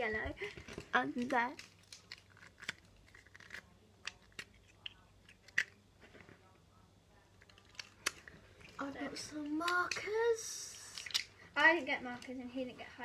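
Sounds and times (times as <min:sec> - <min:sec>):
plastic pens clicking and tapping: 0:00.4 - 0:05.8, 0:09.4 - 0:11.3.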